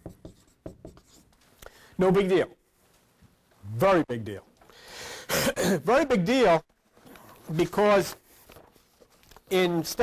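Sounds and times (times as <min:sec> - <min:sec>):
pen scratching on a surface: 0:00.0 - 0:01.3.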